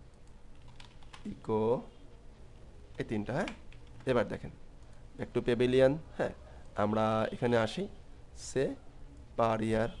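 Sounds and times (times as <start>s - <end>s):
typing on keyboard: 0.2s - 1.3s.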